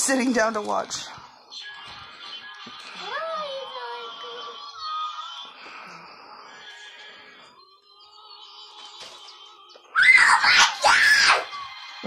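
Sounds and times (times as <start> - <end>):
faint background music: 0.0 - 12.0
child squealing: 10.0 - 11.6.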